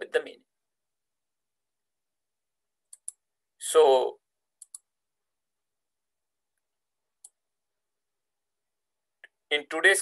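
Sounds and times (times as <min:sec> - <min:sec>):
computer mouse clicks: 0:02.9 - 0:03.2, 0:04.6 - 0:04.9, 0:07.2 - 0:07.4.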